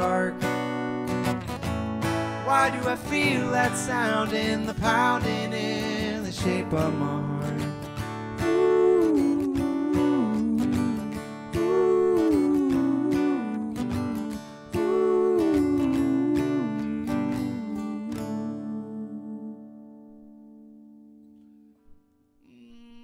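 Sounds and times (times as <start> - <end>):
acoustic guitar strumming: 0.0 - 22.2
wordless vocal melody: 2.2 - 20.8.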